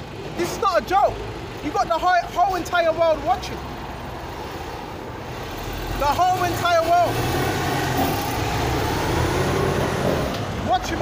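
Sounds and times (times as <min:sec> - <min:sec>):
road traffic engine rumble: 0:00.0 - 0:11.0.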